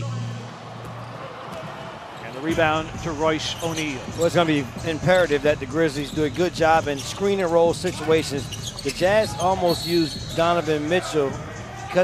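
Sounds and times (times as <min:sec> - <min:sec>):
court and crowd murmur: 0:00.0 - 0:12.0.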